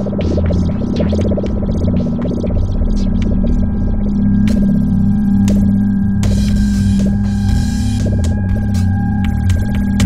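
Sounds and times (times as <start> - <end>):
ambient electronic music: 0.0 - 10.0.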